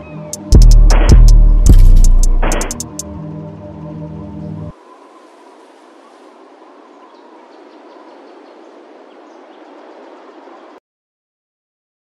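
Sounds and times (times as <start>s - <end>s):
hiss-like ambient noise: 4.7s - 10.8s.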